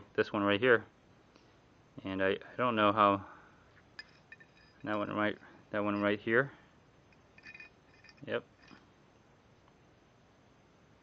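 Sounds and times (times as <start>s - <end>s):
metallic clinks of drill bits: 4.0s - 6.3s, 7.1s - 8.9s.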